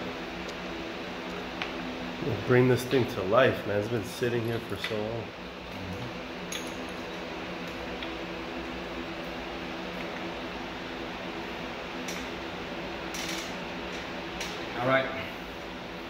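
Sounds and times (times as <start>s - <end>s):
steady machine hum: 0.0s - 16.0s.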